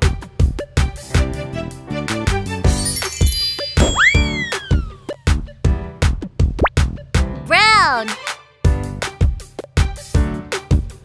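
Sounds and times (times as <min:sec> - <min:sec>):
upbeat cartoon music: 0:02.0 - 0:08.9
high tinkling chime: 0:02.7 - 0:05.1
swooping cartoon sound effect: 0:03.8 - 0:05.1.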